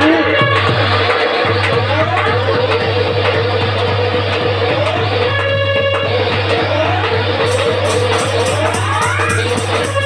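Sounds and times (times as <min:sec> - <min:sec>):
drum strokes: 0:00.0 - 0:10.0
steady low hum: 0:00.8 - 0:10.0.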